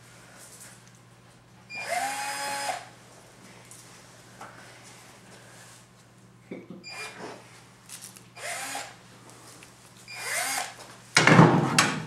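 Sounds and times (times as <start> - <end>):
power drill whirring: 1.7 - 2.9, 8.4 - 9.0, 10.1 - 10.8.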